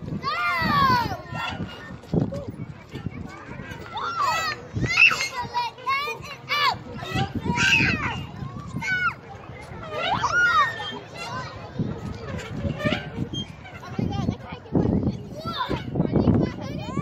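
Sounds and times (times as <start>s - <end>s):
children calling out: 0.2s - 1.8s, 3.4s - 12.4s.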